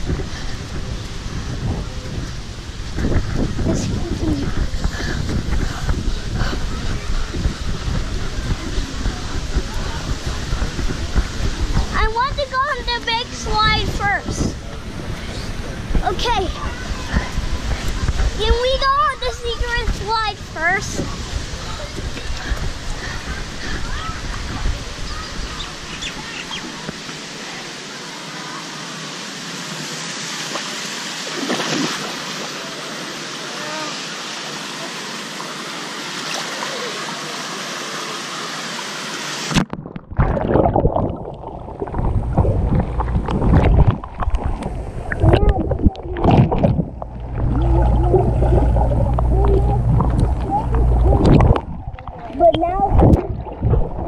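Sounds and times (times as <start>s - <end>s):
muffled underwater rumble: 0.0s - 27.1s, 39.5s - 54.0s
rush of water and air: 0.0s - 54.0s
bubbling and gurgling water: 39.3s - 54.0s.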